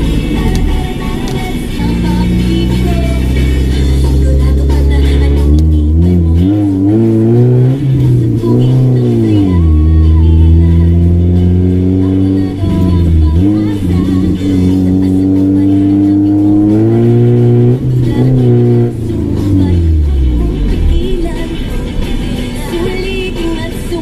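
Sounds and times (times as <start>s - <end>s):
car engine accelerating: 0.0s - 24.0s
music playing: 0.0s - 24.0s.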